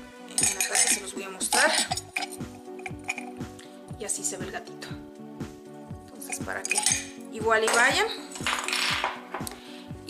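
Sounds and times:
measuring spoons clinking: 0.3s - 3.4s, 6.2s - 9.5s.

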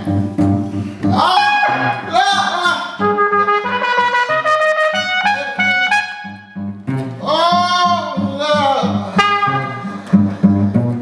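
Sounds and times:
plucked cello bass line: 0.0s - 11.0s
trumpet melody: 1.1s - 7.1s, 9.1s - 10.1s.

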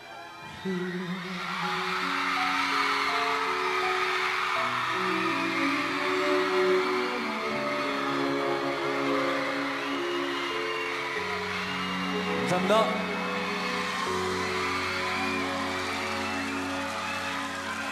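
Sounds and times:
violins and cellos sustained chords: 4.6s - 17.9s.

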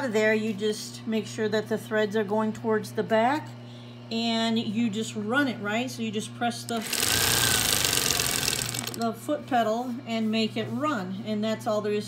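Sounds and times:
sewing machine rattling: 6.7s - 9.0s.

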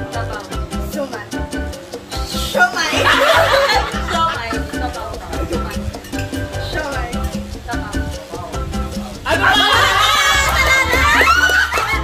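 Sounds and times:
background music with steady beat: 0.0s - 12.0s
laughter: 2.9s - 5.8s, 9.3s - 12.0s.

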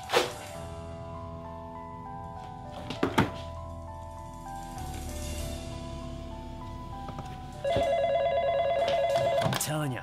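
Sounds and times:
desk telephone ringing: 7.6s - 9.8s.

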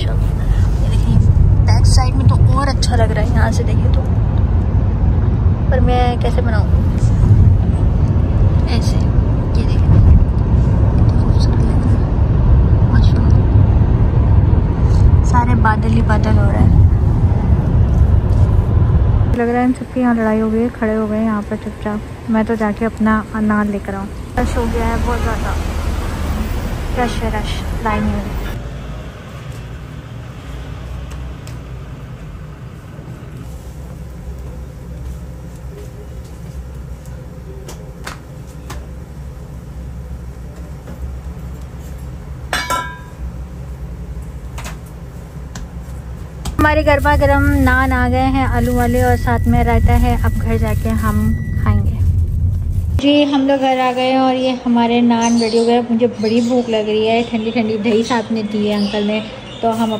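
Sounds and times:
car road and wind noise: 0.0s - 19.4s, 22.9s - 33.4s, 45.4s - 53.0s
street traffic rumble: 0.0s - 59.9s.

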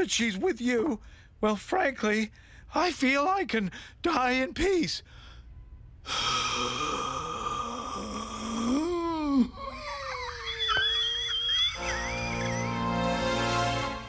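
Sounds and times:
cartoon score music: 11.2s - 14.0s.

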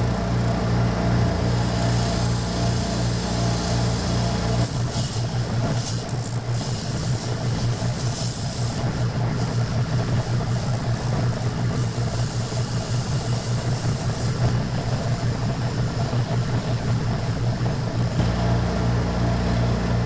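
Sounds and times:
spindle sander motor hum: 0.0s - 20.0s
abrasive hissing on wood: 1.5s - 18.2s.

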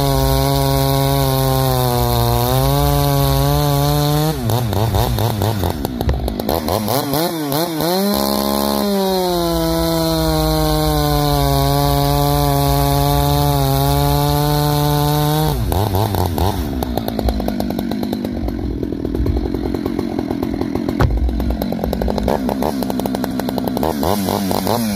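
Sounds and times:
chainsaw cutting log: 0.0s - 24.9s.

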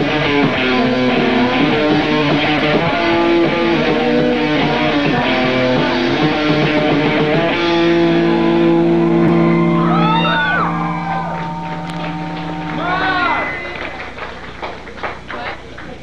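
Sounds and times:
electric guitar ringing chord: 0.0s - 14.6s
swooping pitched wails: 8.0s - 14.3s.

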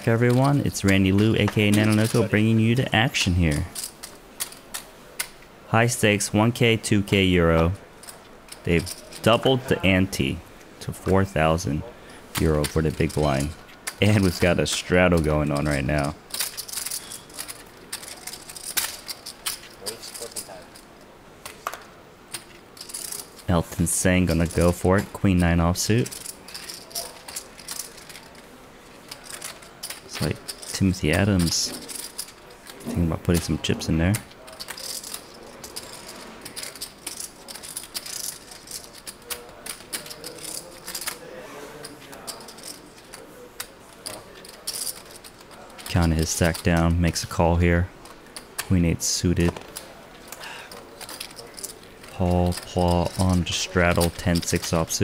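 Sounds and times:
poker chips clicking: 0.0s - 5.4s, 7.6s - 9.8s, 12.3s - 47.4s, 48.0s - 55.0s.

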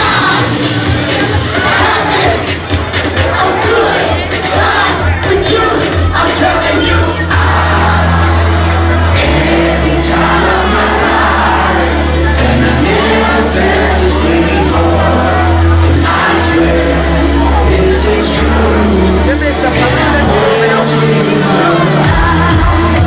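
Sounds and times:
crowd shouting and cheering: 0.0s - 23.0s
electronic dance music: 0.0s - 23.0s.

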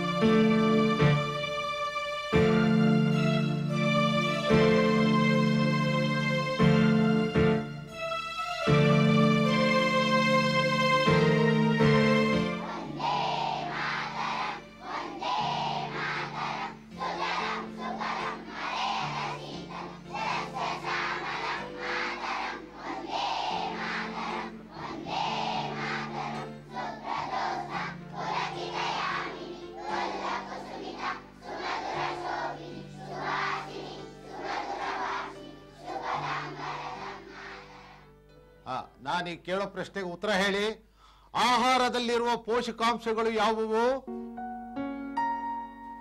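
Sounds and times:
children singing in unison: 9.0s - 38.1s.

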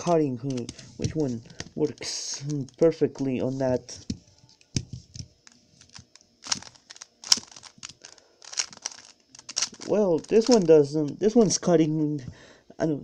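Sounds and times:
puzzle cube layers clicking: 5.9s - 10.7s.

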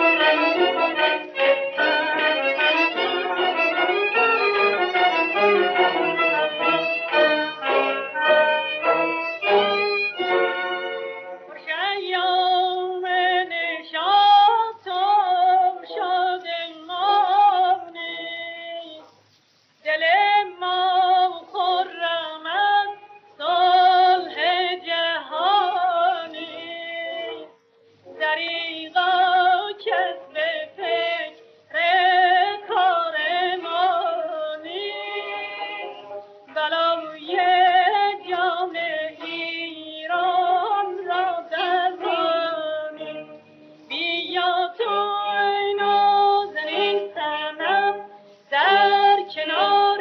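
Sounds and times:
woman singing with vibrato: 0.0s - 19.0s, 19.9s - 27.5s, 28.1s - 50.0s.

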